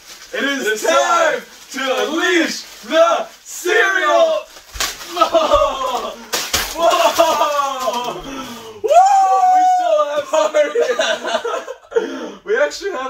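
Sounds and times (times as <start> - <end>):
men shouting and yelling: 0.3 - 11.6.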